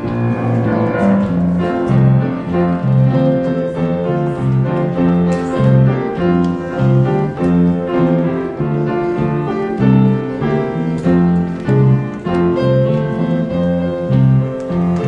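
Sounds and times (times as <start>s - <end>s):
grand piano playing: 0.0s - 15.0s.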